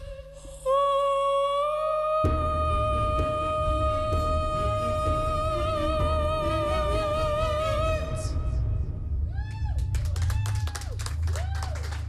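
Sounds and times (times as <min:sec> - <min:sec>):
woman singing long high note: 0:00.0 - 0:08.6.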